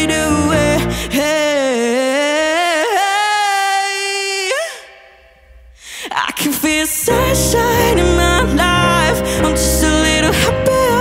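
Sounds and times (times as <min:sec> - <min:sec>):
music: 0:00.0 - 0:01.7, 0:07.0 - 0:11.0.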